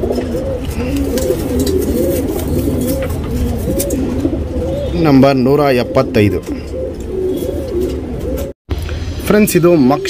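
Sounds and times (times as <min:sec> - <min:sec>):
pigeons cooing: 0:00.0 - 0:08.6.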